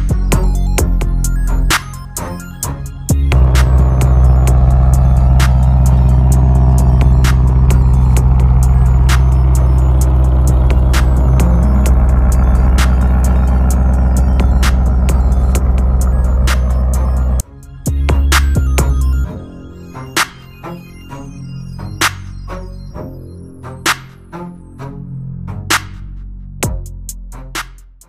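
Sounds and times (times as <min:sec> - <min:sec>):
background music with regular beat: 0:00.0 - 0:20.8, 0:25.7 - 0:28.0
car engine idling: 0:03.1 - 0:17.4.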